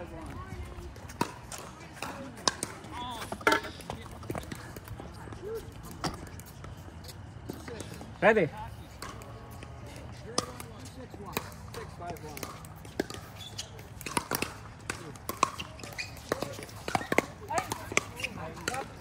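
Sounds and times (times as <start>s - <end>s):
players' voices: 0.0s - 19.0s.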